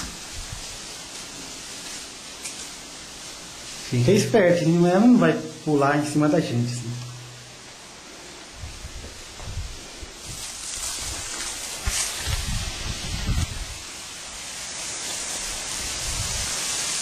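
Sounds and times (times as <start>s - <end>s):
wind noise: 0.0s - 0.9s, 8.5s - 13.9s, 15.4s - 16.8s
grass and leaves rustling: 0.0s - 17.0s.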